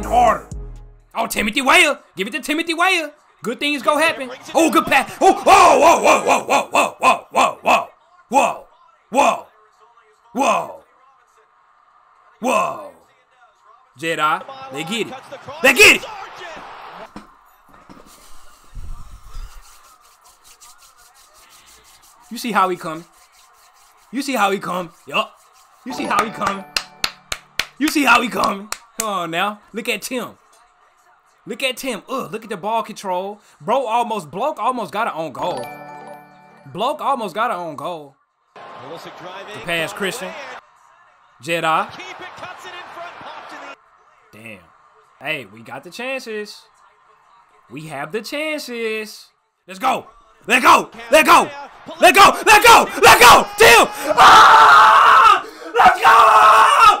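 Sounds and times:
man shouting excitedly: 0.0 - 0.5, 4.6 - 9.4, 10.4 - 10.8, 15.6 - 16.0, 49.8 - 57.0
crowd noise: 1.2 - 17.4, 18.2 - 33.2, 38.5 - 56.1
person commentating: 51.2 - 54.4.

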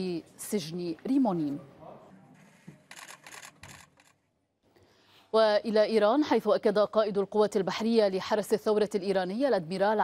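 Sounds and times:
camera shutters clicking: 2.8 - 4.2.

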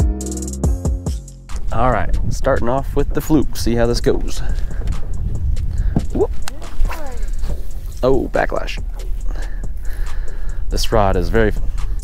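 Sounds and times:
wind rumbling on microphone: 1.5 - 12.0.

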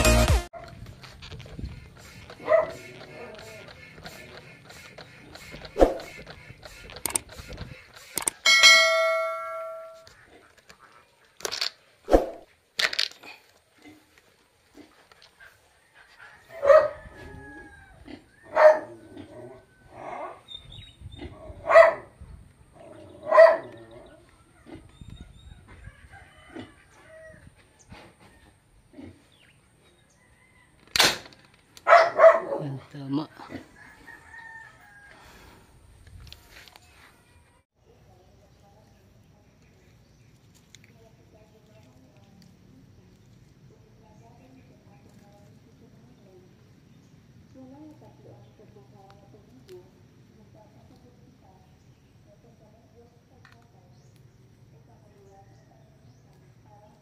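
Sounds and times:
sharp clicks: 2.0 - 8.4
dog barking: 2.4 - 2.9, 16.4 - 17.0, 18.5 - 19.0, 21.6 - 22.1, 23.2 - 23.8, 31.8 - 32.7
ringing tone: 8.4 - 10.0
sharp crack: 30.8 - 31.5.

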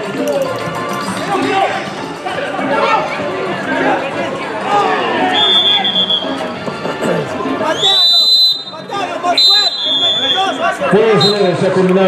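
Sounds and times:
players and spectators shouting: 1.2 - 6.5, 7.2 - 12.0
referee's whistle blasts: 5.3 - 6.4, 7.7 - 11.6.

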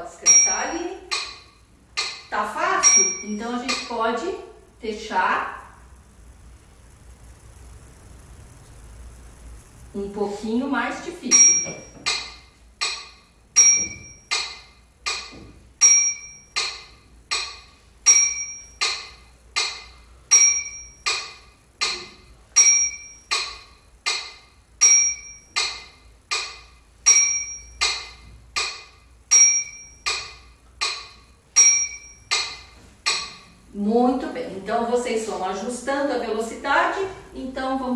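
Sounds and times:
metronome ticking: 0.2 - 4.2, 11.3 - 33.7.

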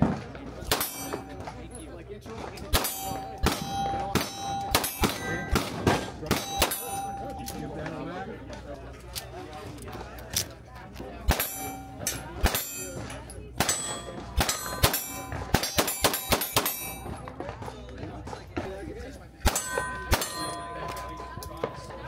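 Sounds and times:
handgun shots: 0.6 - 1.6, 2.6 - 7.6, 11.3 - 12.8, 13.6 - 17.2
steel target plate ringing: 0.8 - 1.6, 2.8 - 8.1, 11.3 - 17.1, 19.5 - 22.0.

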